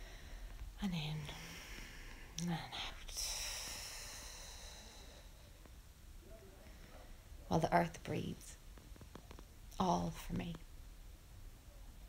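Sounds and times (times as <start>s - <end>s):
long breathy hiss: 1.2s - 5.6s.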